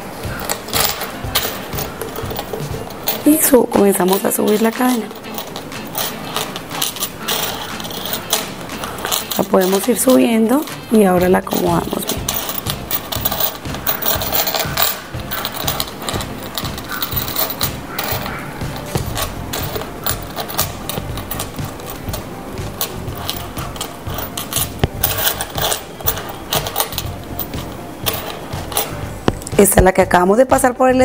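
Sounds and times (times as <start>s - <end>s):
cords rustling: 0.0s - 29.8s
chain clicking and rattling: 0.3s - 29.4s.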